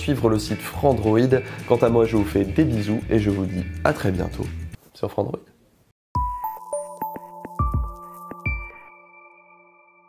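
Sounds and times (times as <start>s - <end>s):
ringing chord of tones: 6.2s - 10.0s.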